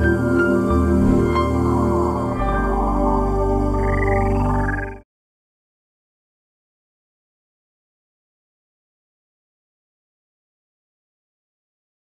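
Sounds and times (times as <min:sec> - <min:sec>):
synth chords over low drone: 0:00.0 - 0:05.0
wavering high tone: 0:00.0 - 0:05.0.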